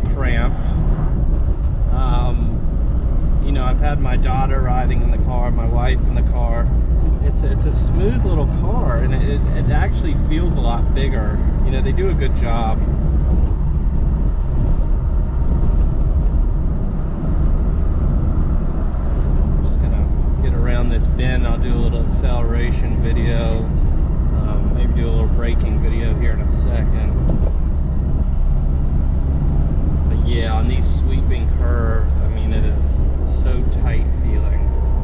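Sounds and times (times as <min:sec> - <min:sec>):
car engine and road noise: 0:00.0 - 0:35.0.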